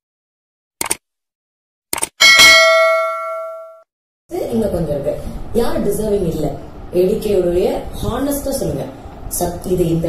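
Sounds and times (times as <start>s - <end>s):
notification bell ding: 2.2s - 3.8s.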